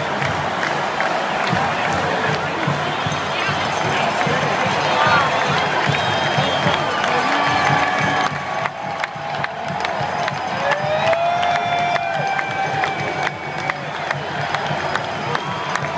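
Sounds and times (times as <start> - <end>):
sharp claps: 0.0 - 15.9
stadium crowd cheering: 0.0 - 15.9
whoops and yells: 4.9 - 15.9.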